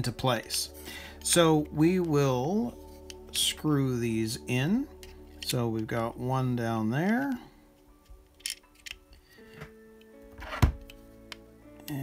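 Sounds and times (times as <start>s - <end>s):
soft background music: 0.0s - 12.0s
plastic parts clicking: 8.0s - 9.7s.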